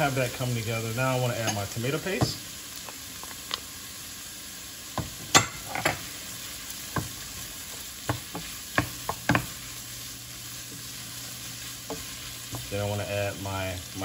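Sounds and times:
food sizzling in a pot: 0.0s - 14.0s
wooden spoon knocking pot: 8.1s - 9.5s.

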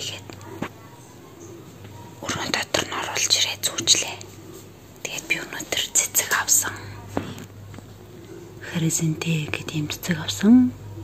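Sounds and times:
person whispering: 0.0s - 0.4s, 2.2s - 7.3s.

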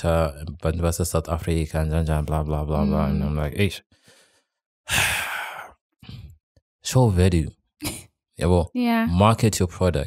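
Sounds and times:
person sighing: 2.8s - 3.3s, 4.9s - 6.2s.

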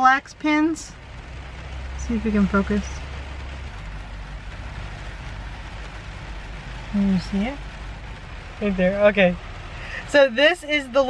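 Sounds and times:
low rumble: 0.0s - 11.0s
rain on car roof: 0.0s - 11.0s.

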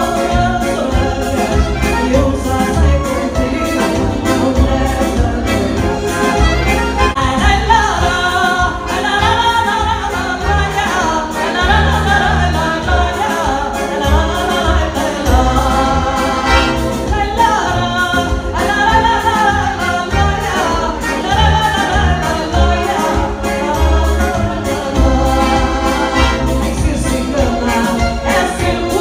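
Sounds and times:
button accordion chords: 0.0s - 29.0s
woman singing into microphone: 0.0s - 29.0s.

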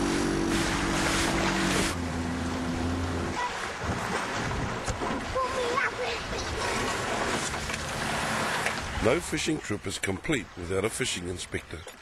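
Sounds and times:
motorboat engine hum: 0.0s - 11.9s
water rushing: 0.0s - 12.0s
wind: 0.0s - 12.0s.

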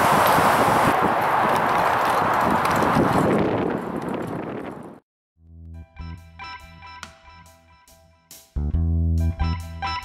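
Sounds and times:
wind buffeting microphone: 0.0s - 5.0s.

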